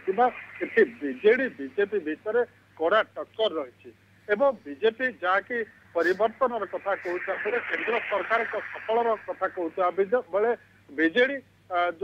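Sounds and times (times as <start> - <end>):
man talking over telephone: 0.0 - 12.0
hiss: 5.9 - 10.0.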